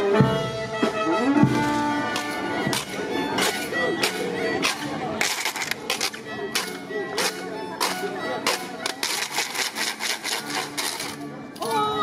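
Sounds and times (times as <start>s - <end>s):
wooden hand percussion scraping: 1.6s - 11.9s.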